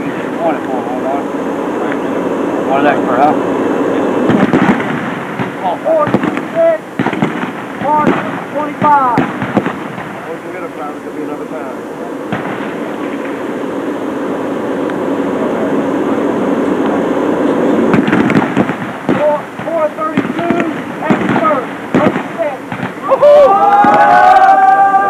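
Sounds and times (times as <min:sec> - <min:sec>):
crackling background noise: 0:00.0 - 0:25.0
loud drawn-out shouted call: 0:19.2 - 0:25.0.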